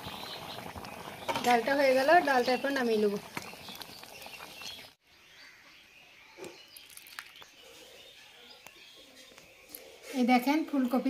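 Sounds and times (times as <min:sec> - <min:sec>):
faint bird chirps: 0:02.3 - 0:10.2.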